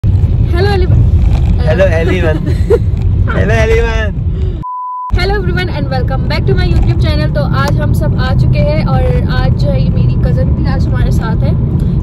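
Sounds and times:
car cabin rumble: 0.1 - 12.0.

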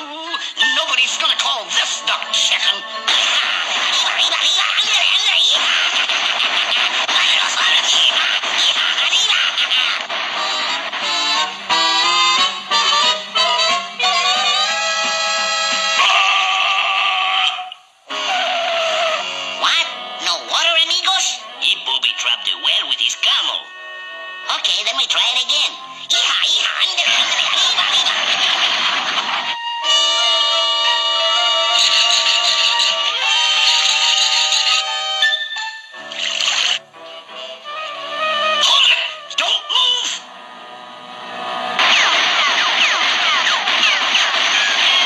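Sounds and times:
cartoon vocal noises: 0.0 - 10.1, 15.9 - 17.9
cartoon music score: 0.0 - 45.0
cartoon sound effects: 2.0 - 21.4, 26.2 - 36.8, 41.8 - 45.0.

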